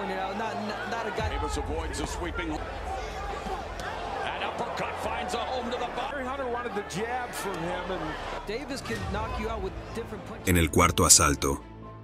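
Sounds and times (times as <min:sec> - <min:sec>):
arena crowd: 0:00.0 - 0:11.6
man commentating: 0:10.5 - 0:11.6.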